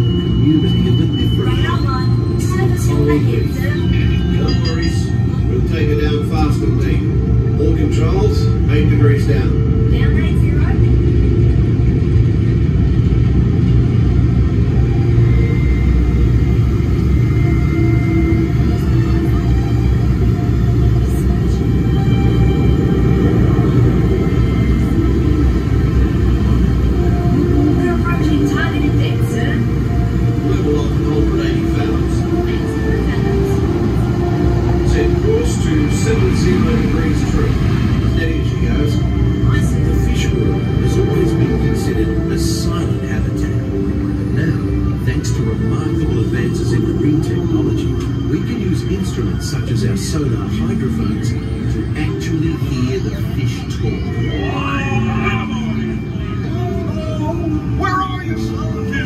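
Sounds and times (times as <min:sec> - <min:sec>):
faint soundtrack music: 0:00.0 - 0:59.0
indistinct voices: 0:00.0 - 0:59.0.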